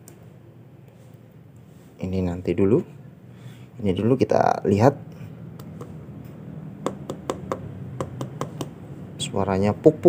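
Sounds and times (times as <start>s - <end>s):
fingers tapping fruit husk: 6.8s - 8.8s.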